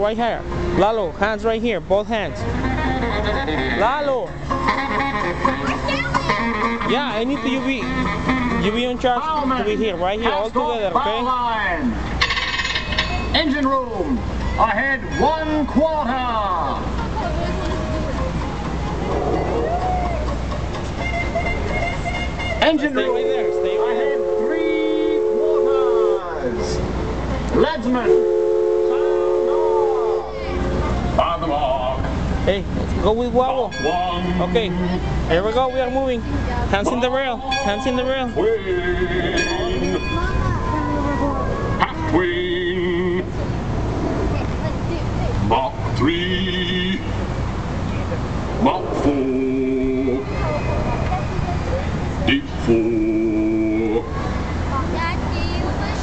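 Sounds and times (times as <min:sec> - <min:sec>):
riverboat rumble: 0:00.0 - 0:56.0
steam whistle blowing a chord: 0:23.1 - 0:26.4, 0:28.0 - 0:30.3.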